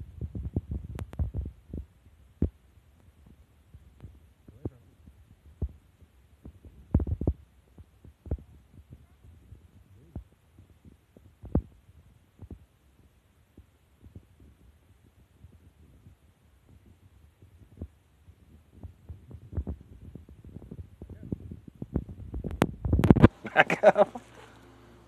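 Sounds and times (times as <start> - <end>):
low thumps on microphone: 0.0 - 23.4.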